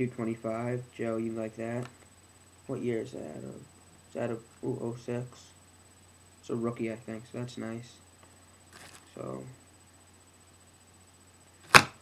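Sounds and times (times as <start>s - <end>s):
faint electrical hum: 0.0s - 12.0s
plastic card holder knock: 11.7s - 12.0s.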